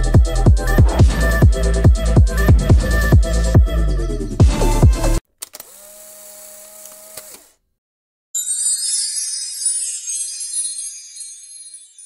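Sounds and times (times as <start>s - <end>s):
electronic dance music: 0.0s - 3.8s, 4.4s - 5.2s
shimmering chime sound: 8.4s - 12.0s.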